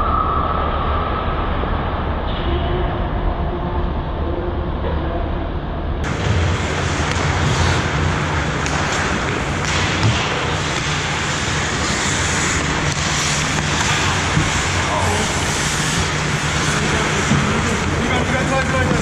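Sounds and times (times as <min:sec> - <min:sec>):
arena hum: 0:00.0 - 0:19.0
skates scraping on ice: 0:06.1 - 0:19.0.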